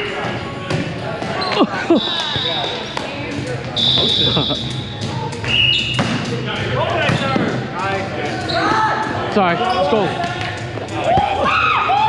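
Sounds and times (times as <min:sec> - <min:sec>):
shoes squeaking on gym floor: 0:01.2 - 0:06.2, 0:08.4 - 0:08.8.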